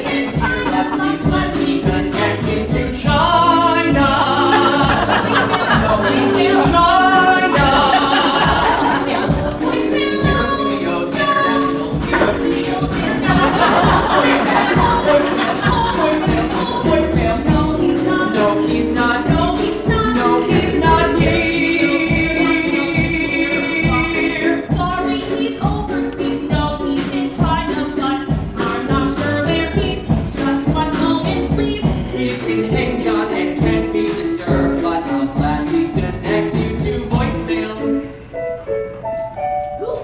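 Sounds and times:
drums: 0.0s - 37.7s
man and woman singing duet: 0.0s - 38.3s
keyboard: 0.0s - 40.0s.

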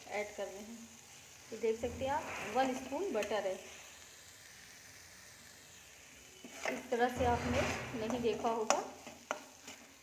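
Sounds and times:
masala sizzling in pan: 0.0s - 10.0s.

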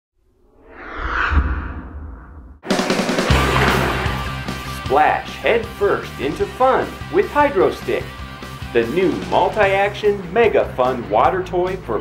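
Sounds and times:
low rumble: 0.4s - 2.6s
whoosh sound effect: 0.5s - 4.6s.

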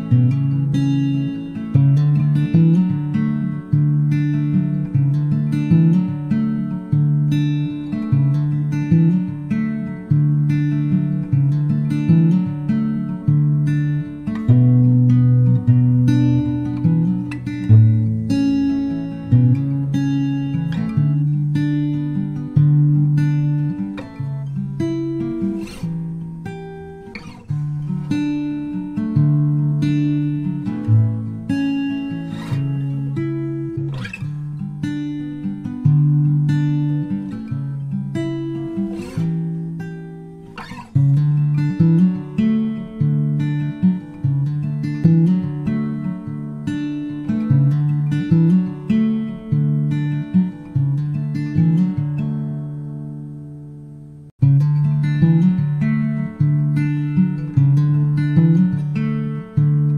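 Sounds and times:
acoustic guitar folk instrumental: 0.0s - 59.9s.

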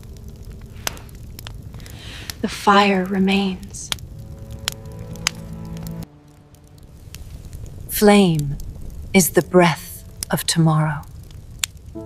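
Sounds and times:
campfire crackling: 0.0s - 12.0s
sharp fire pops: 0.0s - 12.0s
low rumble: 3.1s - 9.2s.

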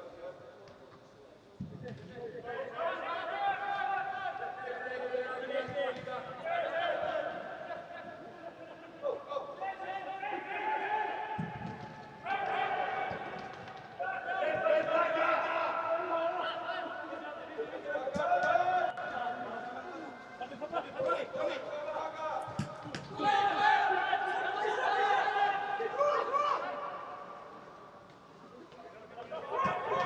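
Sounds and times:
footballers shouting: 2.5s - 28.0s, 29.0s - 30.0s.

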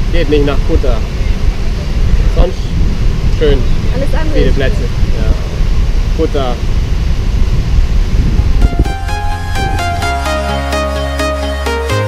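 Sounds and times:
wind buffeting microphone: 0.0s - 10.3s
music with plucked notes: 8.6s - 12.0s.

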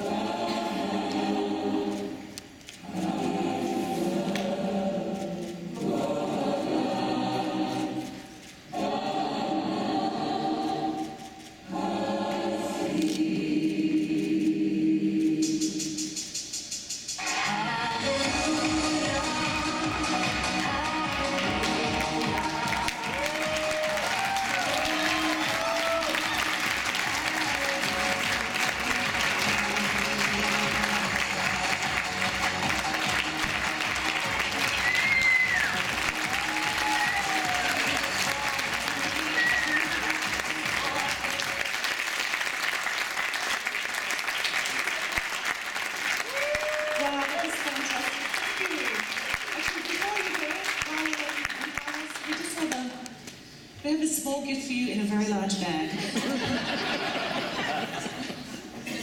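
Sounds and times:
music: 0.0s - 41.9s
audience clapping: 19.9s - 53.1s
cheers and whoops: 22.3s - 26.6s, 34.7s - 38.0s, 39.2s - 40.1s, 46.2s - 47.2s.

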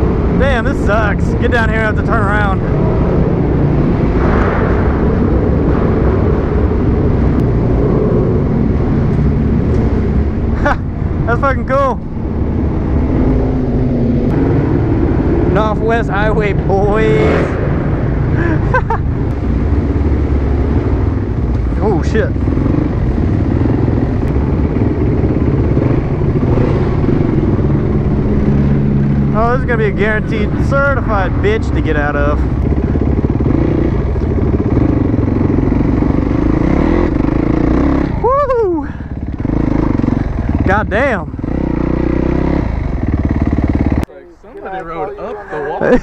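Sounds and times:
motorcycle engine rumbling: 0.0s - 46.0s
person laughing: 10.5s - 10.9s, 18.3s - 19.3s, 38.2s - 39.1s, 44.5s - 46.0s
person shouting: 38.2s - 39.0s, 44.6s - 46.0s
person speaking: 44.1s - 46.0s.

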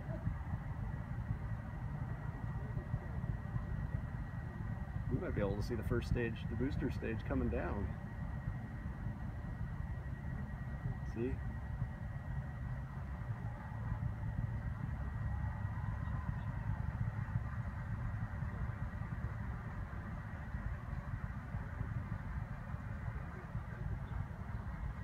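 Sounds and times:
faint high whine: 0.0s - 25.0s
low steady rumble: 0.0s - 25.0s.

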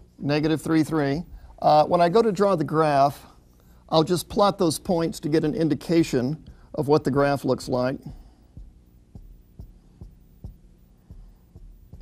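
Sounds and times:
room hum: 0.0s - 12.0s
soft low thumps: 1.2s - 1.9s, 4.9s - 12.0s.

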